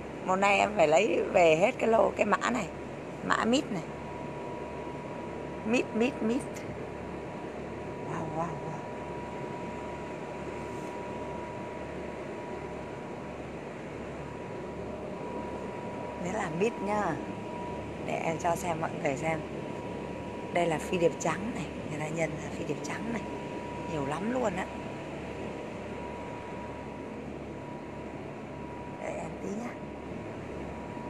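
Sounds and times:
faint high whine: 0.0s - 31.0s.

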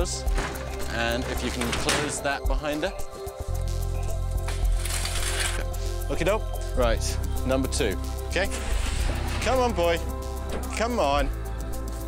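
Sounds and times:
background music with low drone: 0.0s - 12.0s
chain-link gate rattling shut: 0.2s - 2.4s.

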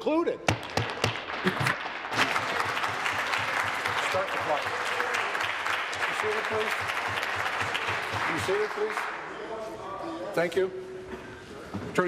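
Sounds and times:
crowd applauding: 0.5s - 9.3s.

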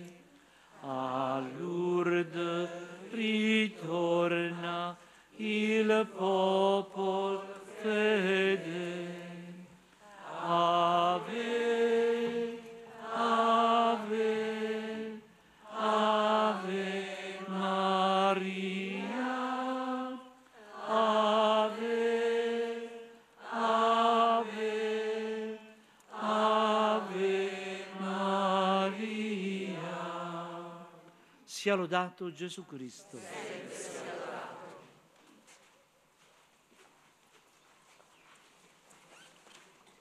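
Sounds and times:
voices singing a hymn: 0.0s - 31.2s, 33.1s - 35.0s.

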